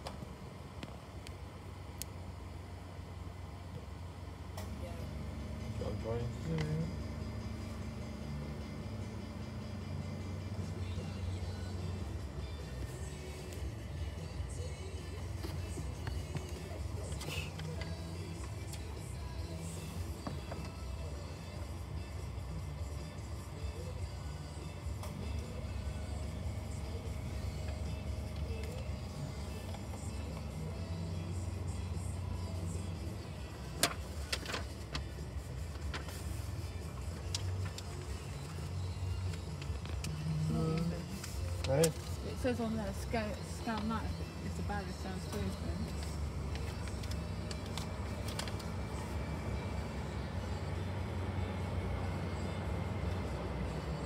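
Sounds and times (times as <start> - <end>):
car engine and road hum: 0.0 - 54.0.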